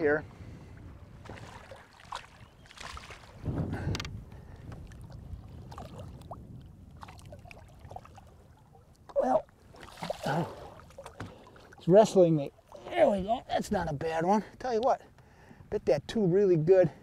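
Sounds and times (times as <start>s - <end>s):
wind: 0.0s - 17.0s
water lapping against boat: 0.2s - 13.6s
small splashes: 1.2s - 3.4s, 7.0s - 11.9s.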